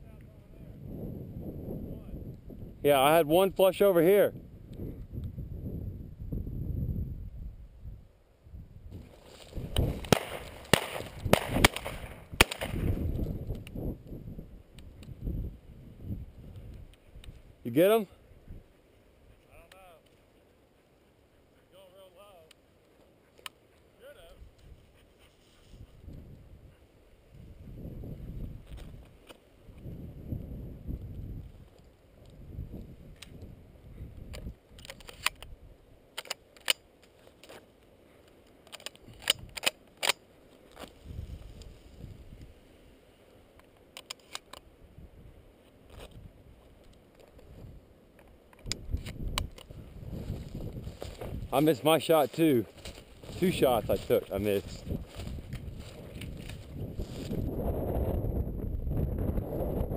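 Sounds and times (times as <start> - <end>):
wind rumble on microphone: 0.0 - 3.6, 4.2 - 17.7, 24.3 - 35.8, 41.0 - 42.6, 44.8 - 47.9, 48.6 - 51.6, 52.7 - 59.9
footsteps through dry grass: 8.9 - 13.5, 40.4 - 42.6, 48.9 - 57.6
stems rustling and snapping: 9.0 - 13.8, 34.3 - 35.5, 36.1 - 41.7, 48.1 - 57.4.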